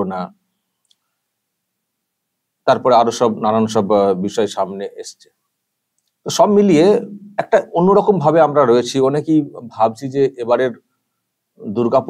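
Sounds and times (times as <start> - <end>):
man speaking: 0.0 - 0.3, 2.7 - 5.3, 6.2 - 10.8, 11.6 - 12.0
faint click: 0.8 - 1.1, 5.9 - 6.2.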